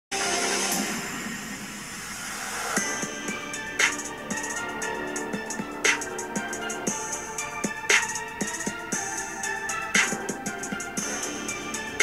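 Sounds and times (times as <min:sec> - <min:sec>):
intro music: 0:00.1 - 0:12.0.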